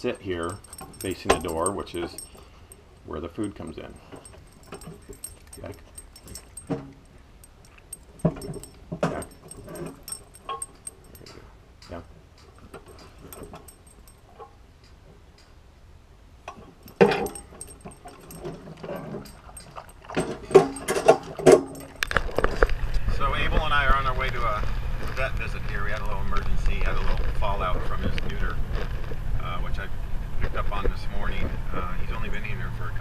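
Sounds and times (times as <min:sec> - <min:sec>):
dog tags jingling: 0:00.0 - 0:14.4, 0:16.6 - 0:24.6
dog eating from bowl: 0:00.1 - 0:11.4, 0:16.9 - 0:28.4.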